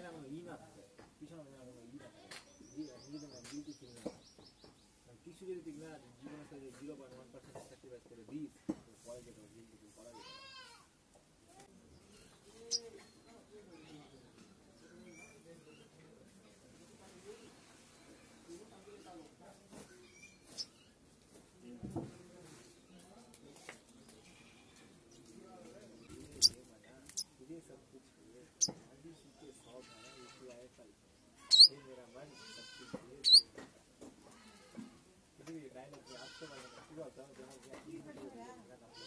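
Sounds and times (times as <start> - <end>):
faint background voices: 0.0 - 39.0
sunbird chip calls: 12.7 - 12.9, 31.5 - 31.8, 33.2 - 33.5
sharp high chirp: 31.5 - 31.7, 33.2 - 33.4.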